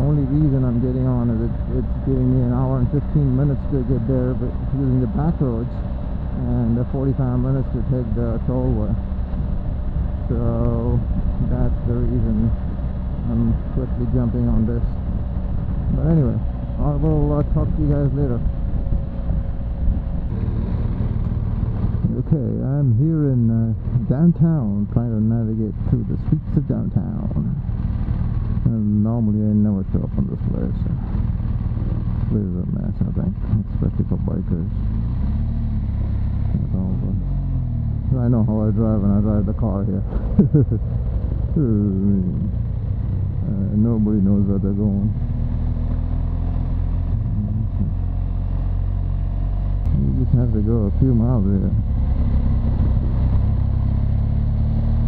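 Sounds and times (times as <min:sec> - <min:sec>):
motorcycle engine drone: 0:00.0 - 0:55.0.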